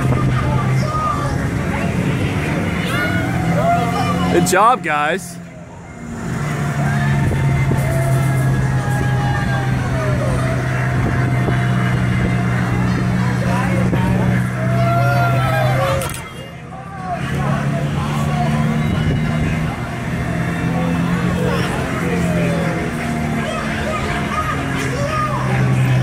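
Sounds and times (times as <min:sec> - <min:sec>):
ride drive humming: 0:00.0 - 0:26.0
voices calling: 0:00.0 - 0:26.0.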